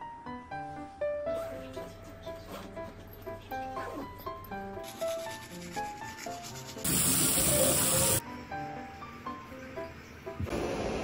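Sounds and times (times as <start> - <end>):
background music: 0.0 - 10.9
shower water spraying: 6.8 - 8.2.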